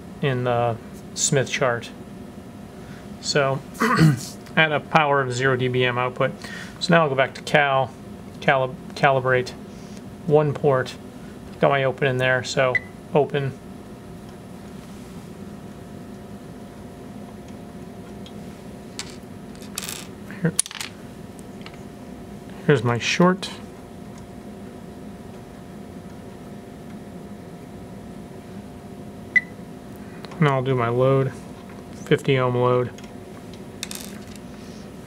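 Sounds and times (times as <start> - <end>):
faint hum: 0.0 - 35.0.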